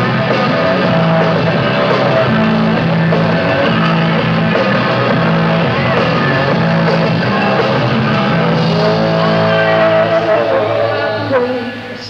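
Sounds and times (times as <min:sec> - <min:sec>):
hard rock band playing: 0:00.0 - 0:11.5
distorted electric guitar: 0:00.0 - 0:12.0.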